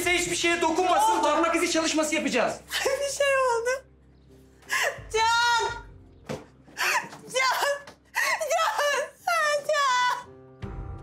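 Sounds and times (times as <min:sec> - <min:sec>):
woman wailing in distress: 0:01.0 - 0:01.5.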